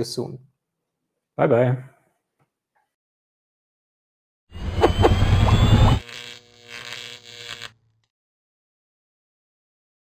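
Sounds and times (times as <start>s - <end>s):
rising whistles: 4.5s - 6.0s.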